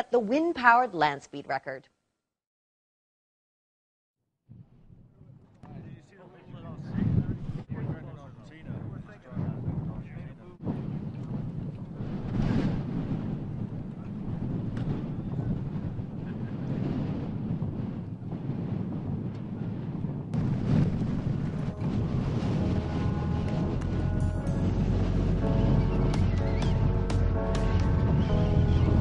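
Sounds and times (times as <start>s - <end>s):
wind buffeting microphone: 4.5s - 29.0s
music with sustained notes: 20.4s - 29.0s.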